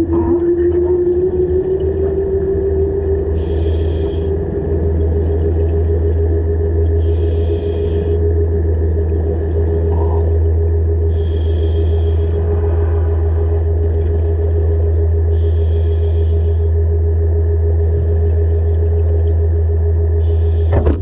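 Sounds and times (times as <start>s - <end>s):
regulator exhaust bubbles: 0.0s - 21.0s
underwater scooter motor whine: 0.0s - 21.0s.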